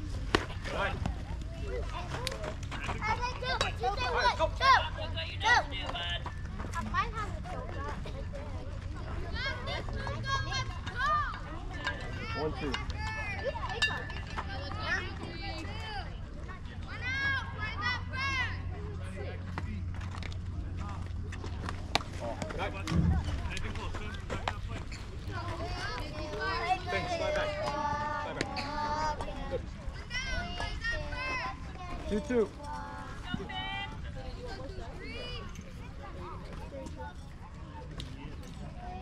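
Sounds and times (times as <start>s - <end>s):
steady low hum: 16.0s - 30.0s.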